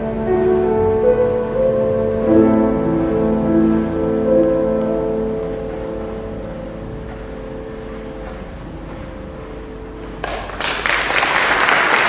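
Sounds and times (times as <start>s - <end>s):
cello holding long note: 0.0s - 10.6s.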